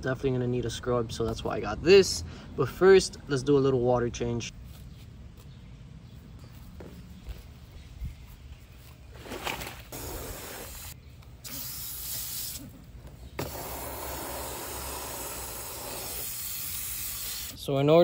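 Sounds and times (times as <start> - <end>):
hose nozzle spraying water: 9.9 - 12.7, 13.4 - 17.6.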